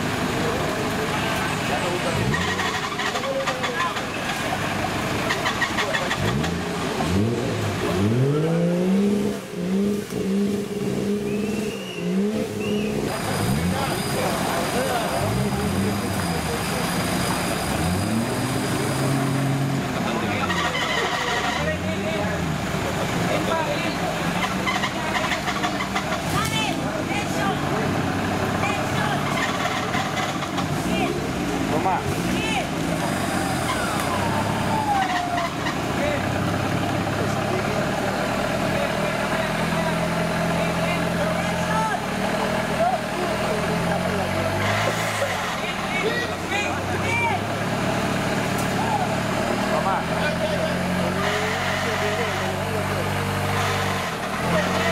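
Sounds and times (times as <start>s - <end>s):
truck engine revving: 0.0s - 54.9s.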